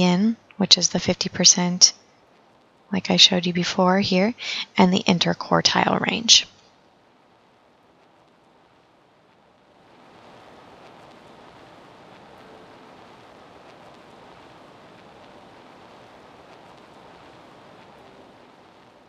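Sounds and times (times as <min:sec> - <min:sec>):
background hiss: 0:00.0 - 0:19.0
faint ticks: 0:01.9 - 0:03.0, 0:06.5 - 0:19.0.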